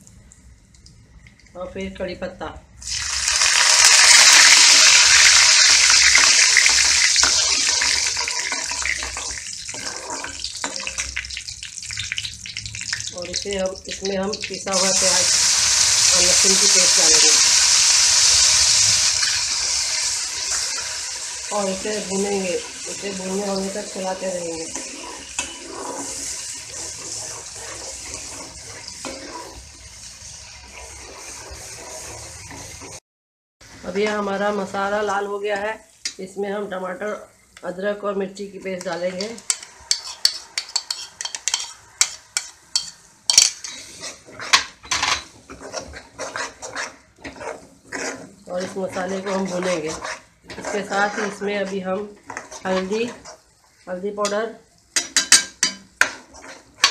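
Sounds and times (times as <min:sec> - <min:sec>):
ladle scraping and stirring pan: 0:02.8 - 0:33.0, 0:38.6 - 0:56.9
paste sizzling in hot oil: 0:02.8 - 0:33.0, 0:39.1 - 0:54.0, 0:54.6 - 0:56.9
spoon scraping ceramic bowl: 0:39.2 - 0:53.4, 0:56.0 - 0:56.9.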